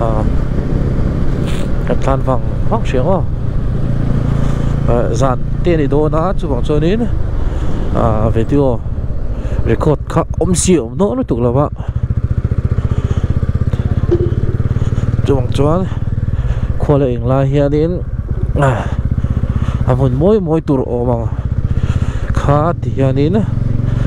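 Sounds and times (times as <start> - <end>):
rider talking: 0.0 - 0.4, 1.5 - 3.5, 4.7 - 8.9, 9.5 - 24.0
motorcycle engine running: 11.3 - 24.0.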